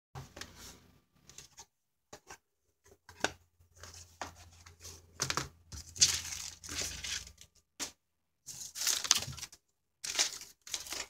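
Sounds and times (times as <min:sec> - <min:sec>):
cardboard boxes rustling: 0:03.8 - 0:07.5.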